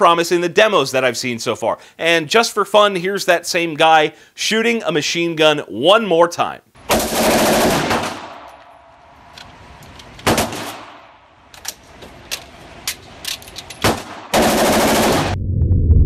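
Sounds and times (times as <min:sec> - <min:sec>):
rifle firing bursts: 0:06.8 - 0:08.5, 0:10.2 - 0:11.1, 0:13.8 - 0:15.4
rifle handling clicks: 0:08.3 - 0:10.4, 0:11.4 - 0:14.0
low rumble: 0:14.8 - 0:16.0.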